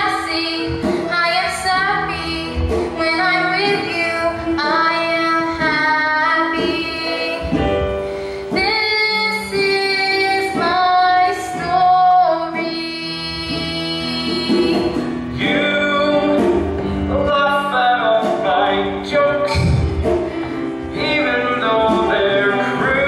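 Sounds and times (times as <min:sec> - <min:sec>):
instrumental accompaniment: 0:00.0 - 0:23.0.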